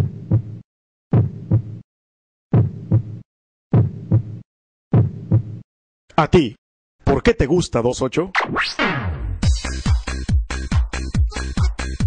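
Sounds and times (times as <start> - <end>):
heartbeat thumps: 0.0 - 1.8, 2.5 - 5.6.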